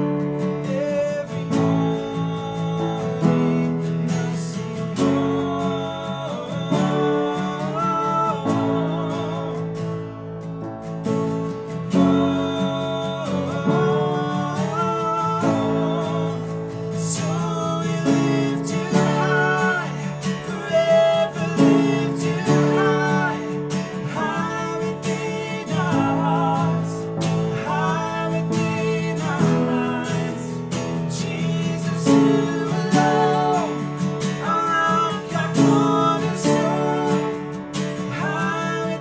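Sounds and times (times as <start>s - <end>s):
acoustic guitar: 0.0s - 39.0s
upright piano: 0.0s - 39.0s
man and woman singing: 0.6s - 9.8s, 11.9s - 39.0s.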